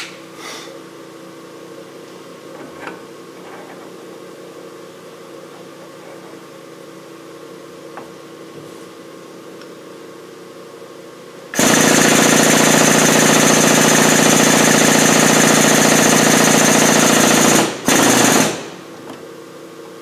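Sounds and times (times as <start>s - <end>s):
hydraulic press pump running: 11.5s - 19.2s.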